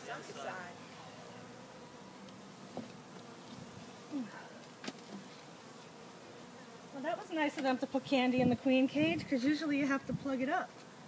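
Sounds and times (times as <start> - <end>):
honeybees buzzing in hive: 0.0 - 11.0.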